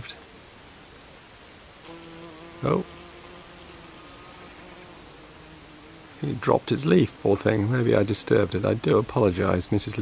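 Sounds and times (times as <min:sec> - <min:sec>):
bee wings buzzing: 0:01.8 - 0:08.8.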